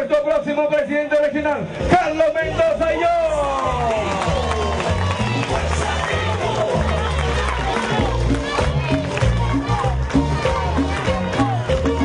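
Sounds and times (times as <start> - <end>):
loud music with heavy bass: 1.4 - 12.0.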